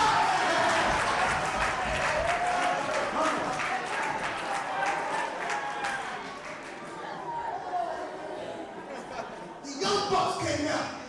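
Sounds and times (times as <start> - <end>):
congregation clapping: 0.0 - 6.8.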